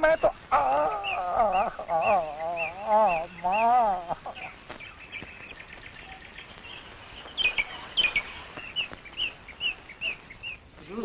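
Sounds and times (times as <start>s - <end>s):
background hiss: 0.0s - 11.0s
birds chirping: 0.0s - 11.0s.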